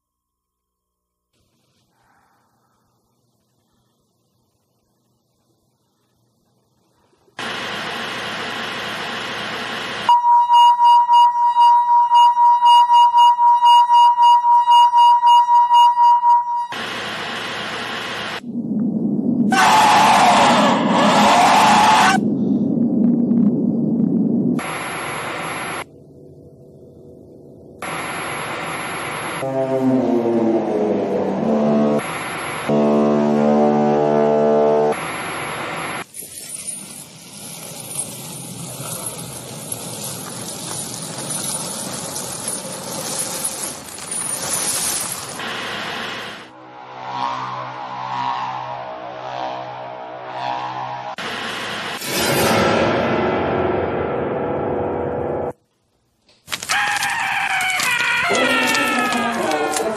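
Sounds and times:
static hiss: 2.9 - 10.1, 16.8 - 18.4, 45.4 - 46.5
harsh electronic noise: 7.4 - 10.2, 16.7 - 22.2, 23.0 - 25.9, 27.8 - 33.4, 34.8 - 36.1, 45.4 - 55.6
pulsing high beep: 10.1 - 16.8, 24.6 - 25.8, 27.8 - 29.4
falling pitched tone: 29.4 - 32.1
steady pitched drone: 45.4 - 55.6.

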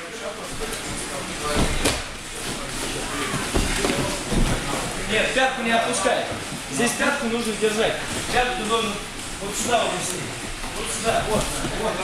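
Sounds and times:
voices in a hall: 0.0 - 12.0
bodies thudding on gym mats: 0.4 - 5.1, 10.6 - 12.0.

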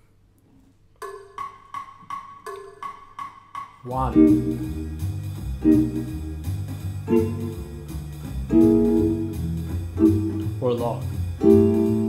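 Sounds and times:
electronic metronome clicking: 7.0 - 10.6.

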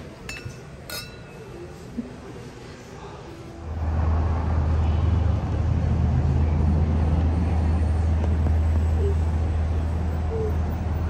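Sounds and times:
road noise: 0.0 - 11.0
traffic engine rumble: 0.0 - 11.0.

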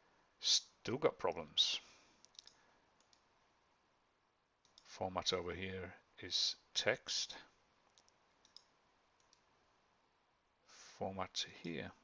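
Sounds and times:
computer mouse clicks: 2.2 - 3.3, 4.6 - 4.9, 7.9 - 9.5.

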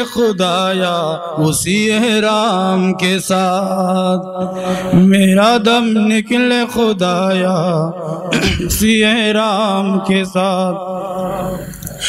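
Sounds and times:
man singing unaccompanied hymn: 0.0 - 11.8.

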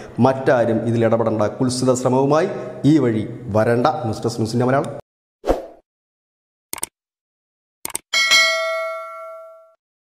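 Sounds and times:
notification bell ding: 8.2 - 9.8.

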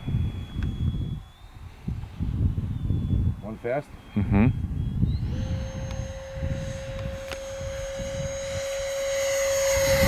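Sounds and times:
distant ducted fan jet whine: 0.0 - 10.0
wind buffeting microphone: 0.0 - 10.0.

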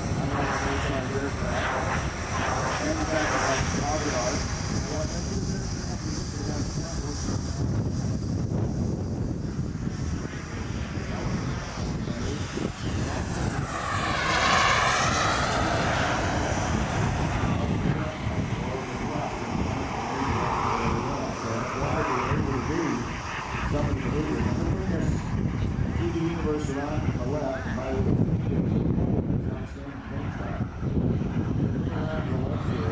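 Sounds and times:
model jet turbine whine: 0.0 - 32.9
jet rushing pass whoosh: 10.1 - 26.2.

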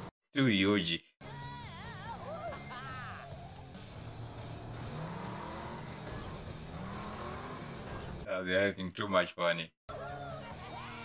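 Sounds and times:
vehicle engine running: 3.4 - 8.3.

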